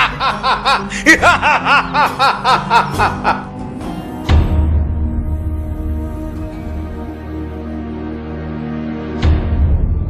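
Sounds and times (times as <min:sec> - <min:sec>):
men laughing: 0:00.0 - 0:03.7.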